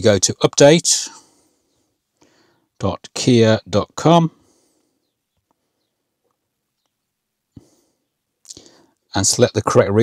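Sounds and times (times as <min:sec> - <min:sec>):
mouth clicks: 0:08.4 - 0:08.8.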